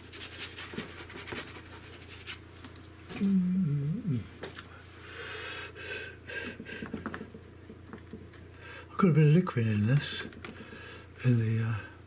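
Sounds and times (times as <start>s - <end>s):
brush scrubbing paint: 0.0s - 2.4s.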